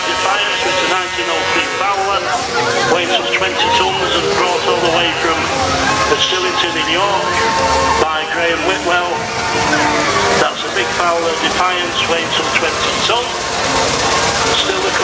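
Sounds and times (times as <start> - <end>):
people talking: 0.0 - 9.3, 10.4 - 15.0
steam wagon running: 0.0 - 15.0.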